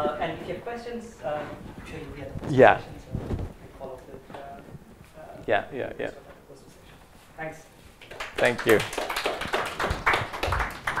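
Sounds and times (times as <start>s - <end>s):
audience applauding: 8.0s - 11.0s.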